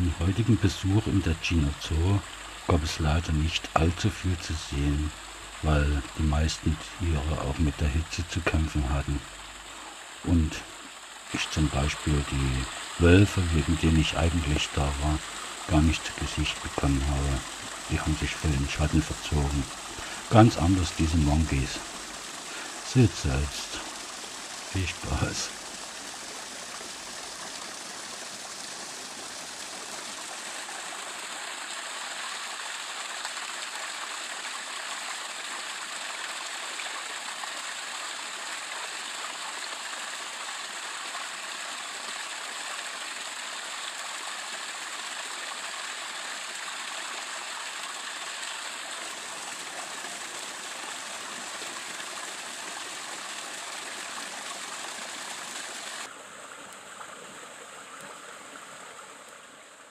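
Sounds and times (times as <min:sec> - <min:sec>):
running water rushing: 0:00.0 - 0:59.9.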